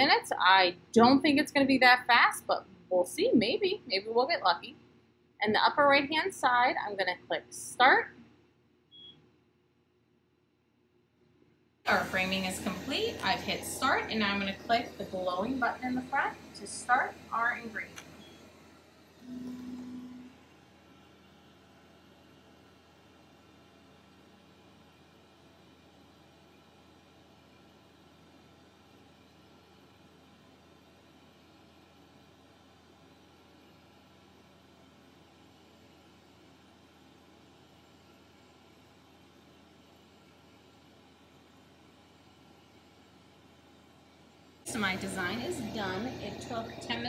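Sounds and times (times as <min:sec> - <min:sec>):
laser engraver humming: 0:11.9 - 0:27.0, 0:44.7 - 0:47.0
low beep: 0:19.2 - 0:20.3.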